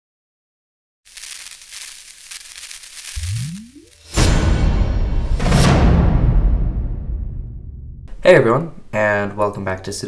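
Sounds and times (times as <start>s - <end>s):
crackly hiss: 1.1s - 4.2s.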